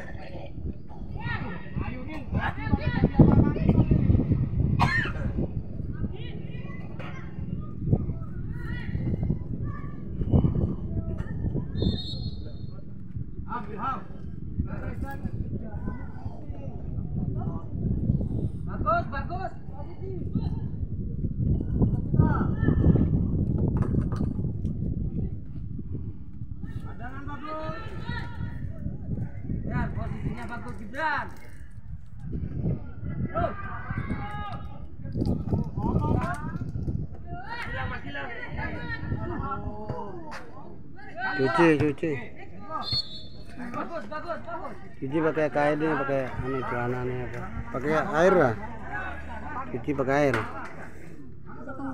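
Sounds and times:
spectators talking: 0.0s - 23.7s, 24.8s - 51.9s.

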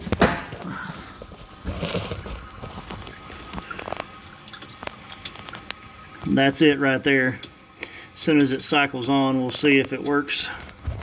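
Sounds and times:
water running into dishwasher: 0.0s - 11.0s.

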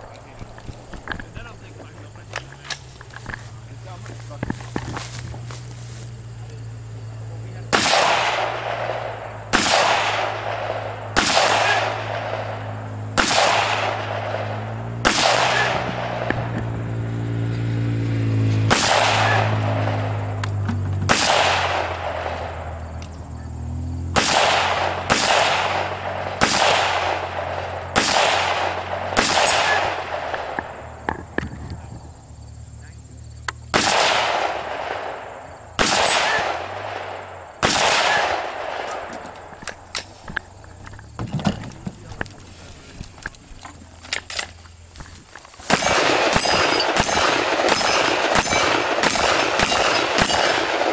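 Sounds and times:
rolling echo of gunshots: 7.7s - 16.6s, 18.7s - 20.4s, 21.0s - 22.8s, 24.1s - 31.0s, 33.7s - 39.6s, 45.6s - 50.9s
rifle shots: 7.7s - 16.8s, 18.6s - 22.8s, 23.7s - 31.4s, 33.6s - 40.3s, 45.6s - 50.9s
steel targets ringing: 29.2s - 30.1s, 45.7s - 50.7s.

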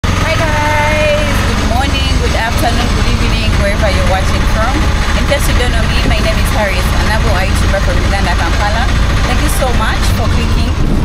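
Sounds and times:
engine droning: 0.0s - 11.0s
woman talking: 0.2s - 10.8s.

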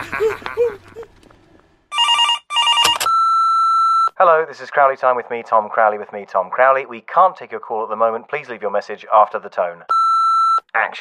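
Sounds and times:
telephone ringing: 1.9s - 4.2s, 9.9s - 10.7s.

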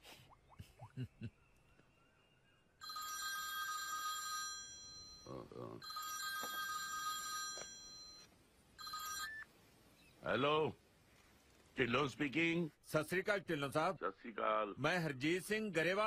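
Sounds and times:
electronic telephone ringing: 2.8s - 9.5s.

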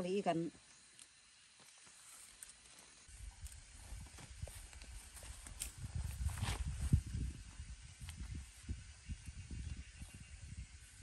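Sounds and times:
plants rustling: 1.5s - 7.0s.

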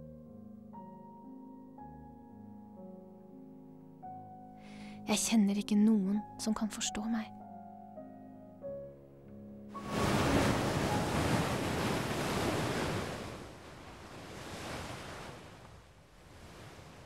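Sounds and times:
waves breaking: 9.8s - 17.0s.

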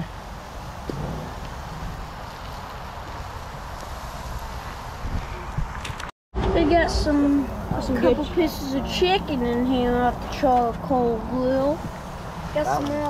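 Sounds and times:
wind on microphone: 0.0s - 6.1s, 9.4s - 13.0s.

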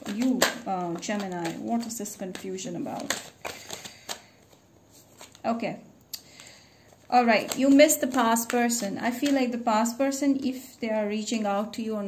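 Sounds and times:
cards being shuffled: 0.0s - 5.4s, 6.2s - 10.0s.

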